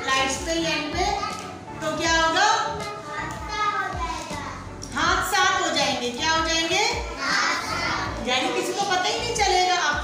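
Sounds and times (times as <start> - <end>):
children chanting a rhyme: 7.0 - 8.2.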